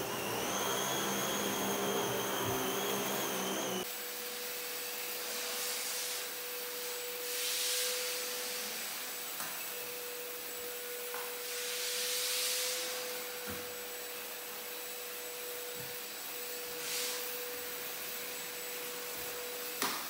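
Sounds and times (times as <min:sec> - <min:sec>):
vacuum motor whine and suction: 0:00.0 - 0:20.0.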